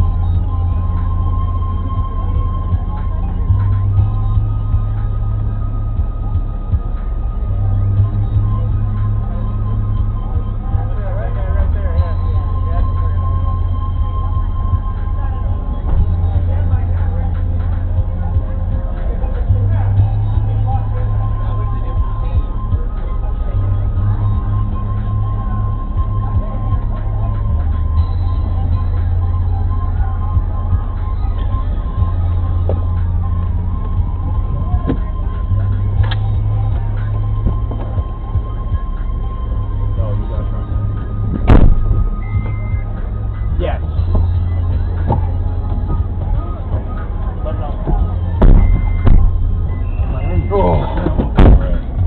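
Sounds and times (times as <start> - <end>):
low rumble inside car cabin: 0.0 - 52.0
music playing: 0.0 - 52.0.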